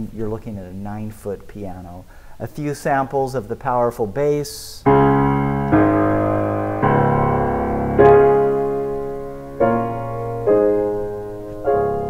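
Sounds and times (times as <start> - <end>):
piano bass chords ringing: 4.8 - 12.0.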